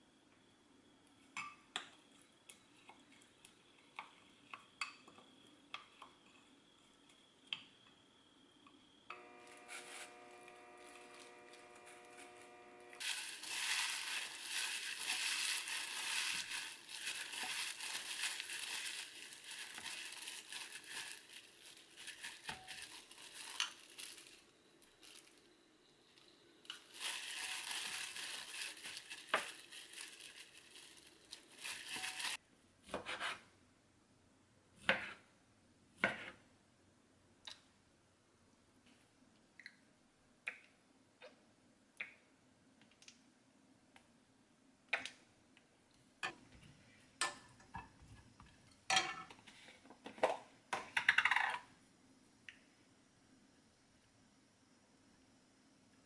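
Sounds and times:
steady hum: 0:08.1 - 0:13.0
dry seaweed crackling: 0:13.0 - 0:25.4, 0:26.6 - 0:32.4.

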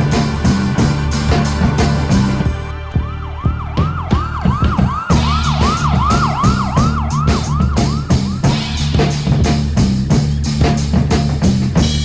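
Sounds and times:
music with bass and drums: 0:00.0 - 0:12.0
fast siren-style wail: 0:02.5 - 0:08.6.

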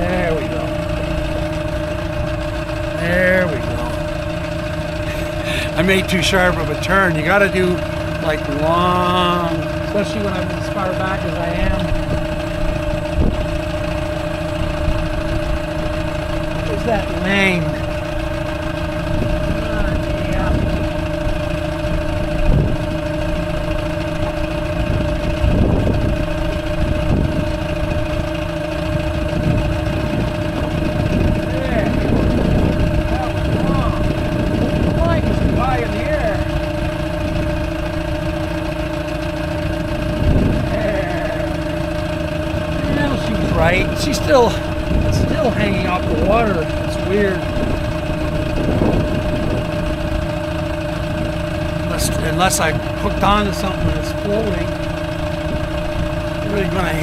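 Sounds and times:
outboard motor humming: 0:00.0 - 0:57.0.

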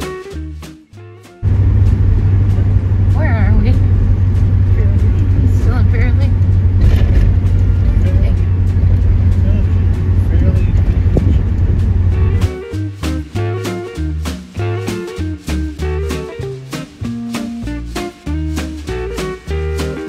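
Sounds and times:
car driving rumble inside cabin: 0:01.4 - 0:12.5.

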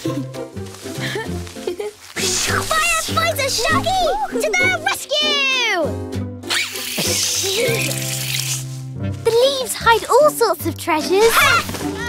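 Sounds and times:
cartoon background music: 0:00.0 - 0:12.0
dry leaves rustling: 0:00.4 - 0:03.8.

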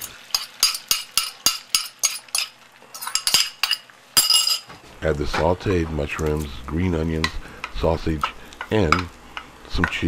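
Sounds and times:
metal utensil clinking on bowl: 0:00.0 - 0:04.7.

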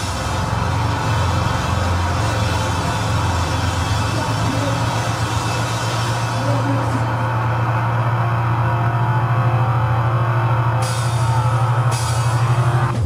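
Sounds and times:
distorted bass and guitar drone: 0:00.0 - 0:13.0.

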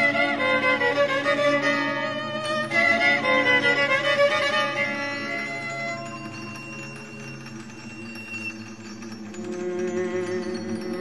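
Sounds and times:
chamber ensemble bowed strings: 0:00.0 - 0:11.0.

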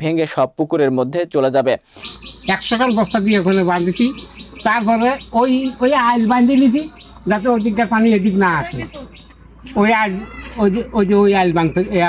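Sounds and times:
man talking: 0:00.0 - 0:01.9, 0:02.5 - 0:09.1, 0:09.7 - 0:12.0
bird chirping: 0:01.9 - 0:12.0.

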